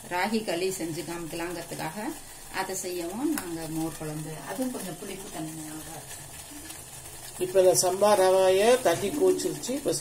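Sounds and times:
woman talking: 0.1s - 6.1s.

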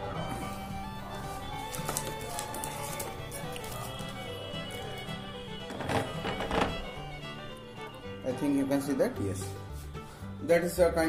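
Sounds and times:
background music with held tones: 0.0s - 11.0s.

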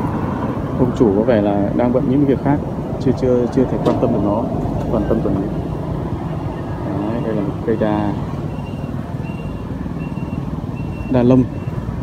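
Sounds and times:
road traffic rumble: 0.0s - 12.0s
faint high-pitched beeps: 6.4s - 11.8s.

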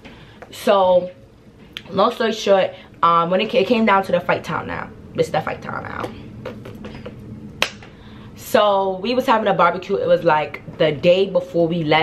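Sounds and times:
sharp hand snap: 7.6s - 7.9s.

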